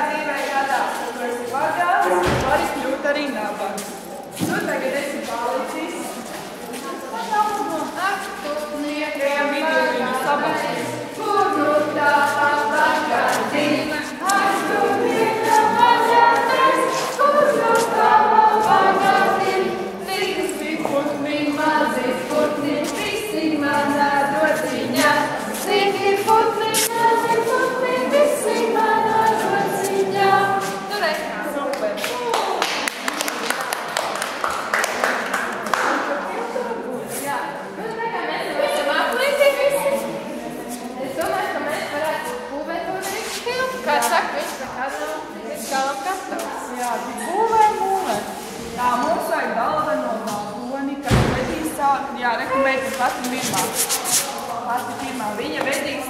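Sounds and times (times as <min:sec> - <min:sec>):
group singing unaccompanied: 0:00.0 - 0:03.1, 0:03.8 - 0:32.1, 0:35.8 - 0:56.0
hands rubbing together: 0:11.1 - 0:32.1, 0:52.8 - 0:56.0.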